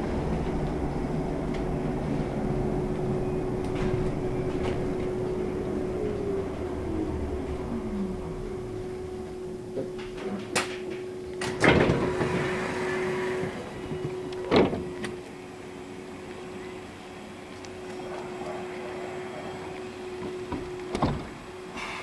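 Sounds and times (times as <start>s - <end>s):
bus doors opening with air rush: 0.0s - 15.9s, 17.8s - 22.0s
bus hum: 0.0s - 22.0s.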